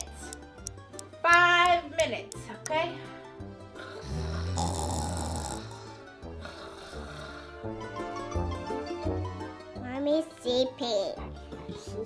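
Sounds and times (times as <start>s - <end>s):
light background music: 0.0s - 12.0s
person snoring: 3.8s - 7.8s.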